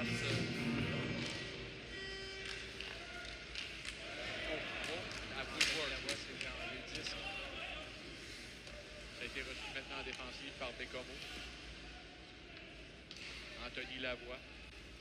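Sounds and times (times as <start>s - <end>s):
hockey sticks clacking on puck: 2.4s - 4.0s, 4.8s - 7.3s.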